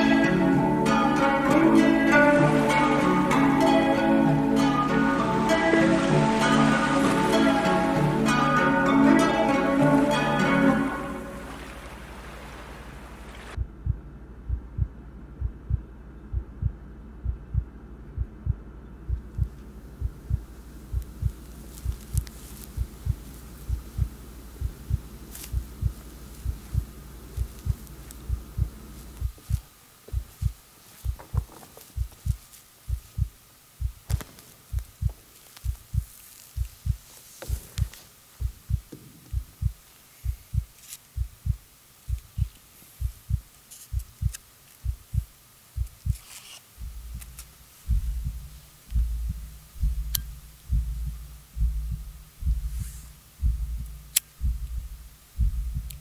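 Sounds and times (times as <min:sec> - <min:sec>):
low hum: 0:00.0 - 0:56.0
low heartbeat-like thump: 0:13.6 - 0:46.2, 0:46.8 - 0:56.0.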